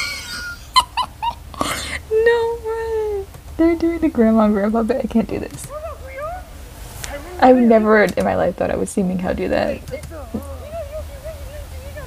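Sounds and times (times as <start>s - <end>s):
woman laughing: 0.0s - 3.2s
woman gasping: 1.5s - 2.2s.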